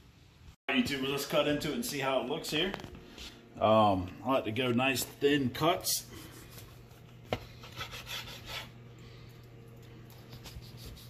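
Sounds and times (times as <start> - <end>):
knife sawing through sausage: 7.6 - 8.8.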